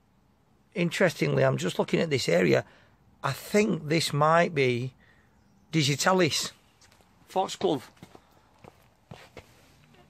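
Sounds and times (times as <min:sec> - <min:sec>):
low background hiss: 0:00.0 - 0:08.5
footsteps on soil: 0:06.8 - 0:09.8.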